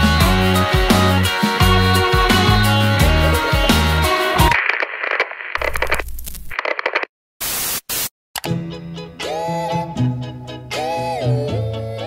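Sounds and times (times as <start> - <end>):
music: 0.0 - 4.5, 8.4 - 12.0
static crackling noise bursts: 4.4 - 8.1.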